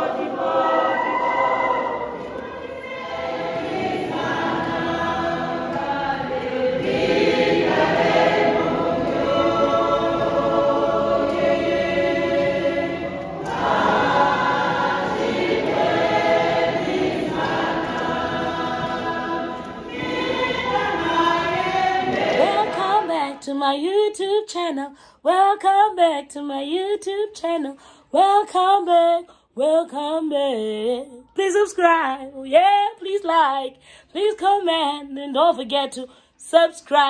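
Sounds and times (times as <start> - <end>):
congregation singing a hymn: 0.0 - 23.7.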